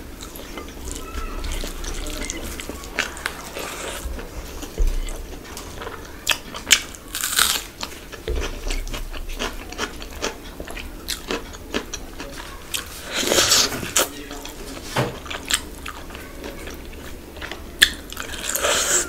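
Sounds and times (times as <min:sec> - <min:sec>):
close chewing with wet mouth clicks: 0:00.2 - 0:14.1.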